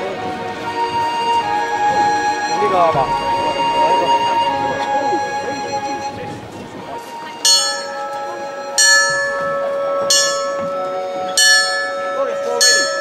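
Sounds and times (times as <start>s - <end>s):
small brass bell ringing: 7.5s - 8.2s, 8.8s - 10.8s, 11.4s - 13.0s.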